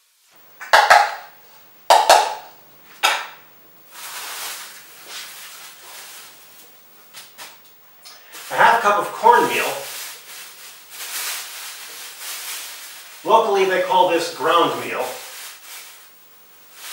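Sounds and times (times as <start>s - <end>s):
measuring cup knocking on bowl: 0.7s - 1.3s, 1.9s - 2.5s
plastic bag rustling: 3.9s - 7.6s, 8.2s - 16.9s.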